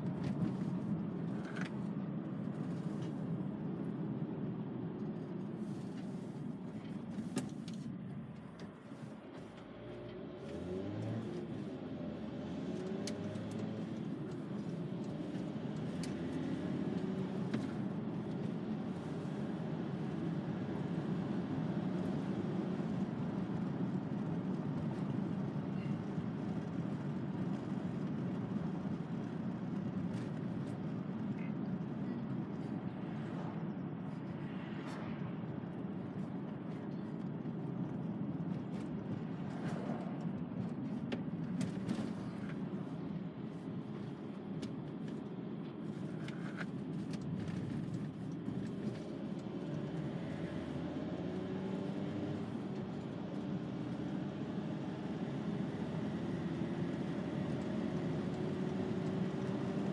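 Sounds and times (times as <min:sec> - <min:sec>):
van engine and tyre drone: 0:00.0 - 0:59.9.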